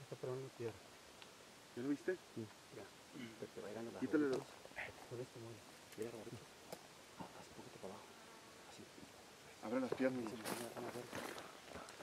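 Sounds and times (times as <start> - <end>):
quiet outdoor background: 0.0 - 12.0.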